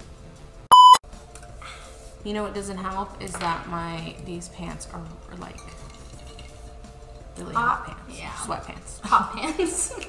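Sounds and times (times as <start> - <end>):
short electronic beep: 0.7 - 1.0.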